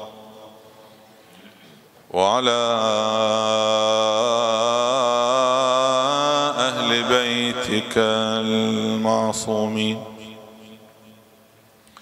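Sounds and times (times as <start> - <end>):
man chanting melodically: 0.0 - 1.0, 2.1 - 11.4.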